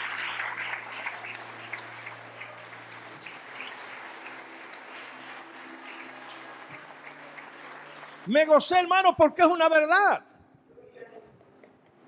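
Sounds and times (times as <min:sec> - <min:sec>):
congregation applauding: 0:00.0 - 0:10.0.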